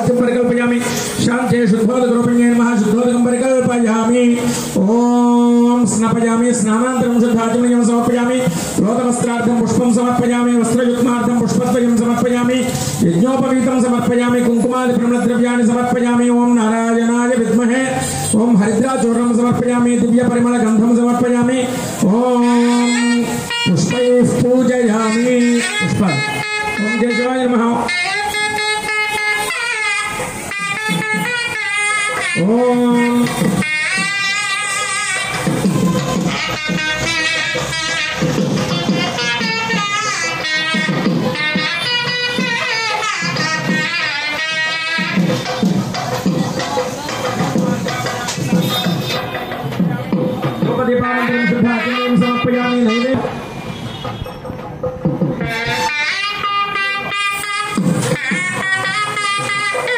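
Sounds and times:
double-reed wind instrument melody: 22.4s - 45.7s, 55.4s - 59.9s.

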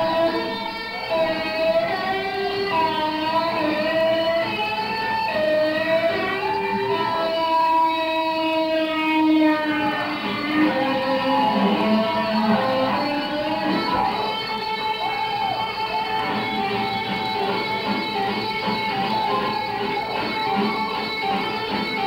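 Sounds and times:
electric guitar solo: 0.0s - 22.0s.

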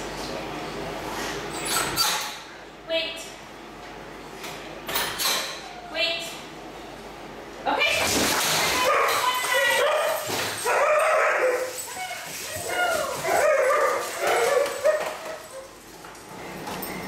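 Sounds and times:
dogs whining and yipping: 9.8s - 15.8s.

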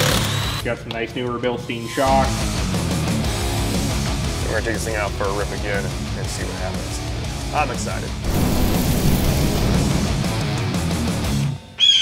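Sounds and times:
heavy rock music: 2.1s - 11.7s
high steady whine: 8.2s - 10.4s.

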